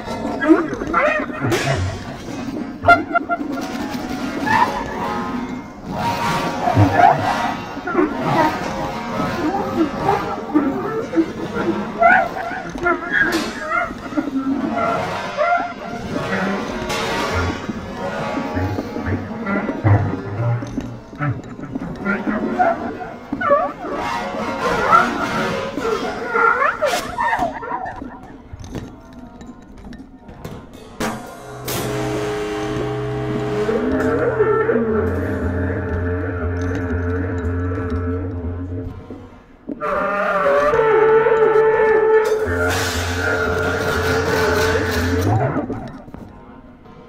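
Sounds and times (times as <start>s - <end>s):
cymbal and drum strikes: 31.0s - 34.3s
low pulsing note: 31.3s - 39.4s
bass clarinet: 31.5s - 39.2s, 39.8s - 45.8s.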